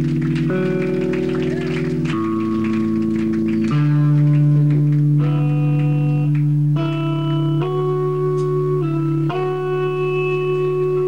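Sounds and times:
rock band playing sustained chords: 0.0 - 11.0.

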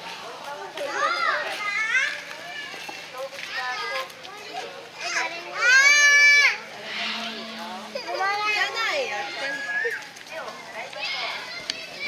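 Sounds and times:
children's voices calling out: 0.7 - 12.0.

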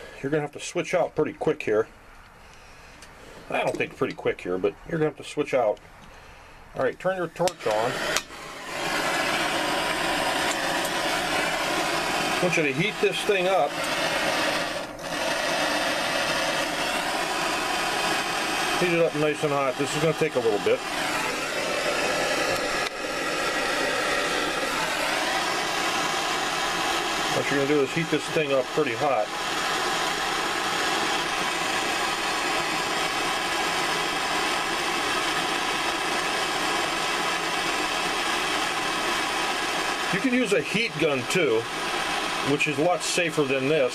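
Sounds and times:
gas torch flame hissing: 0.0 - 1.0, 5.6 - 43.9.

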